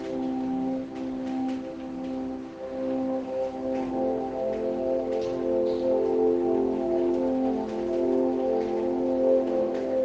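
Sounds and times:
soft meditation music: 0.0 - 10.0.

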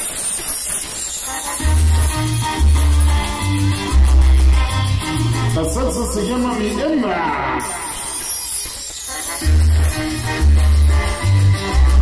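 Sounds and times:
salsa music over sound system: 0.0 - 12.0
low bass notes: 1.6 - 6.2, 9.4 - 12.0.

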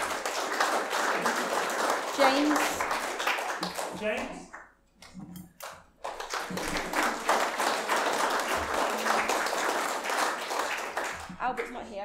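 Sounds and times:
congregation applauding: 0.0 - 4.6, 5.6 - 12.0.

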